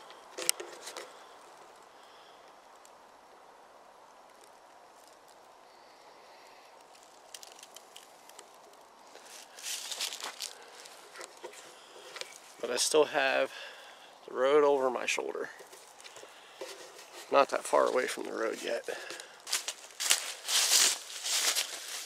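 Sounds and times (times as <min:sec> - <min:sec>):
footsteps crunching dry leaves: 0:06.9 - 0:12.6, 0:15.6 - 0:22.0.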